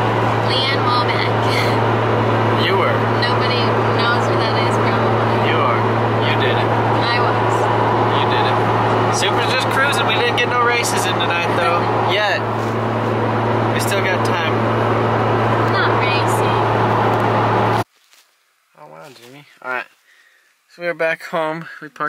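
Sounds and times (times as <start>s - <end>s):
car engine drone from cabin: 0.0s - 17.9s
road noise: 0.0s - 17.9s.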